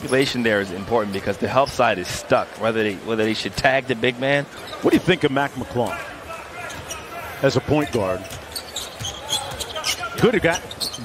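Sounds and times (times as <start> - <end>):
arena background noise: 0.0 - 11.0
shoe squeaks: 4.5 - 5.0, 6.5 - 11.0.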